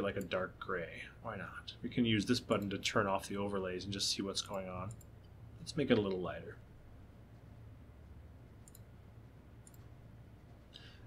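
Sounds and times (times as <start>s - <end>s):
steady low hum: 0.0s - 11.0s
faint computer mouse clicks: 8.6s - 8.9s, 9.6s - 9.9s.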